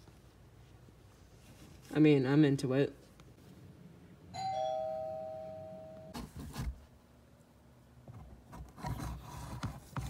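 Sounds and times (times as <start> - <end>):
two-note doorbell chime: 4.4 - 6.2.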